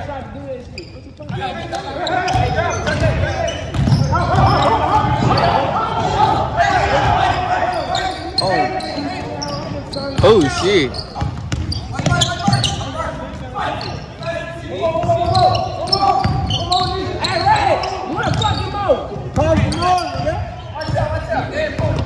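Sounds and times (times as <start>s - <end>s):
players shouting: 1.3s - 11.4s
basketball bouncing on hardwood: 2.3s - 5.3s, 11.2s - 12.6s.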